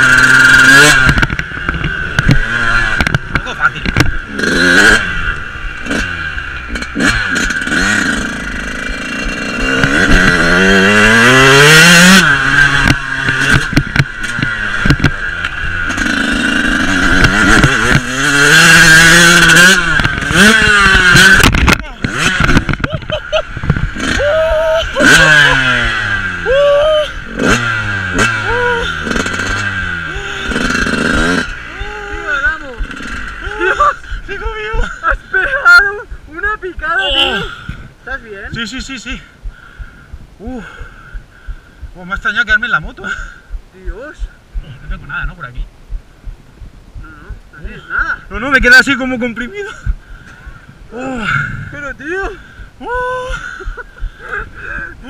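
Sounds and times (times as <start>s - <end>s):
dirt bike engine revving: 0.0s - 45.3s, 47.0s - 54.8s.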